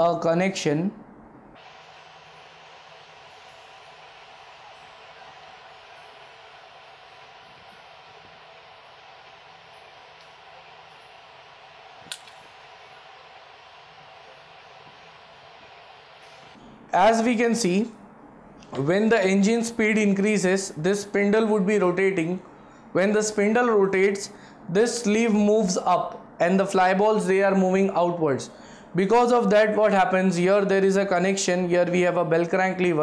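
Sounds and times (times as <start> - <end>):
faint room tone hiss: 0.0 - 33.0.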